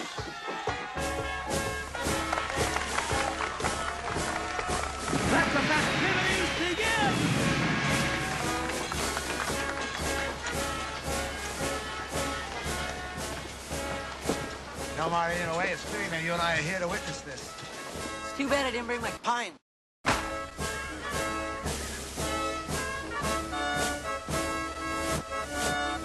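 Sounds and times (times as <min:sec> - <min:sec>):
crowd noise: 0:00.0 - 0:17.5
festival band music: 0:00.0 - 0:19.3, 0:20.1 - 0:26.0.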